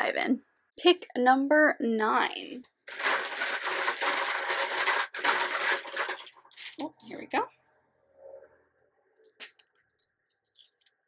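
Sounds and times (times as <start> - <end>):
paper slips rustling: 2.9 - 6.8.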